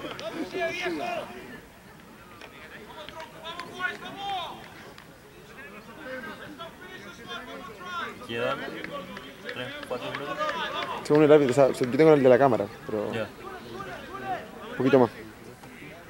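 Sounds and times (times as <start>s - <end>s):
distant people talking: 0.0s - 16.0s.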